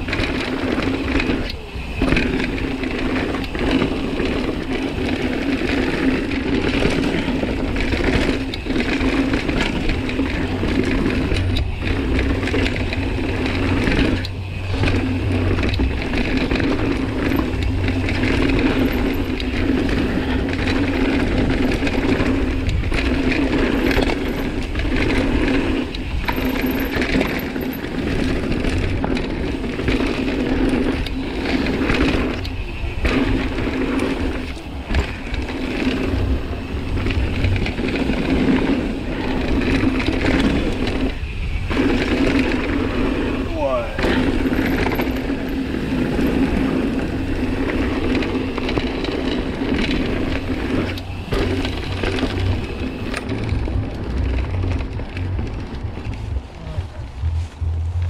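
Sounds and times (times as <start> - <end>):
bike tyres rumbling over gravel: 0.0 - 58.0
freehub buzzing: 0.0 - 58.0.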